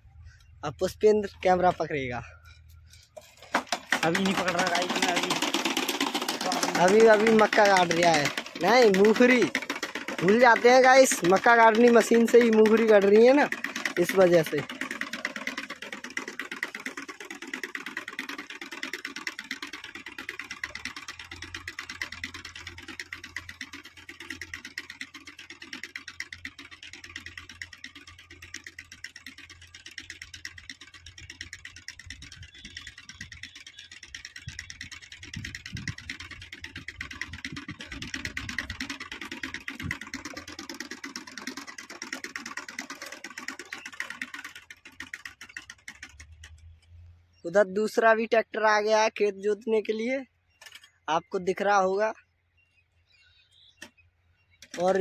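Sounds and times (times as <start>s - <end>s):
seed planter rattling and clicking: 0.7s - 52.2s, 54.6s - 55.0s.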